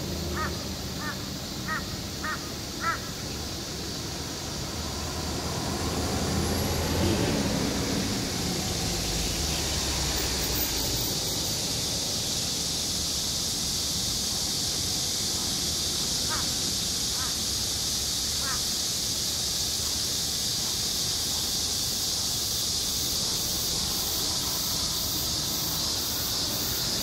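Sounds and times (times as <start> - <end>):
crow calling: 0.3 - 3.2, 16.3 - 17.4, 18.4 - 18.7
aircraft flying overhead: 3.8 - 12.2.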